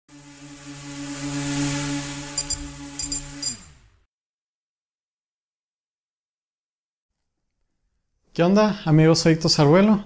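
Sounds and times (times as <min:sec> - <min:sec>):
low drone: 0:00.1 - 0:04.0.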